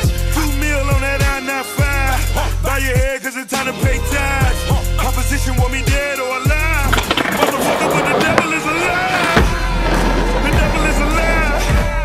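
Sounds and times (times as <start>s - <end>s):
skateboard wheels rolling on concrete: 5.8s - 12.0s
skateboard clack: 6.7s - 12.0s.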